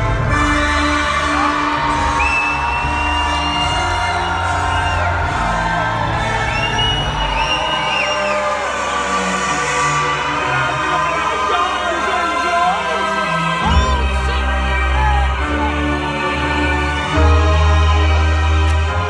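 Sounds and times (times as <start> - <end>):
crowd whooping: 0.6 - 9.8.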